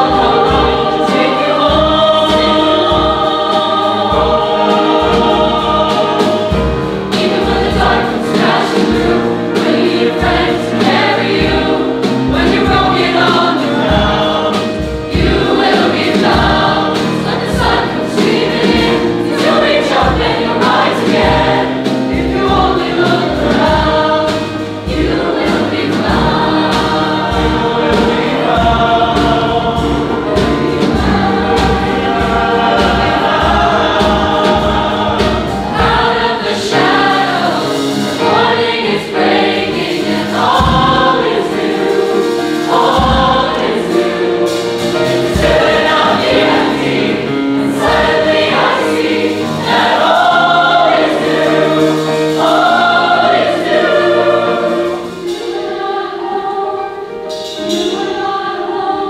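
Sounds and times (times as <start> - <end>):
mixed choir singing: 0.0 - 59.0
steady low beat: 24.9 - 37.2.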